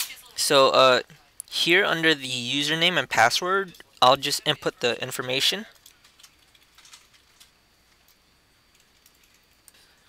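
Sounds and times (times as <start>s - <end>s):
faint keyboard clicks: 5.7s - 10.0s.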